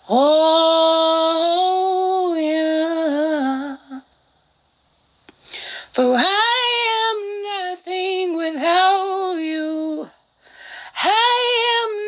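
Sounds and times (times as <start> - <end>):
woman singing unaccompanied: 0.0 - 4.1, 5.8 - 10.2, 10.9 - 12.0.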